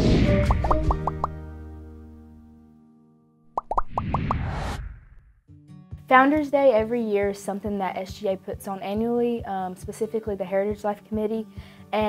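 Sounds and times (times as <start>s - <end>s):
rising pops: 0.4s - 1.4s, 3.5s - 5.3s.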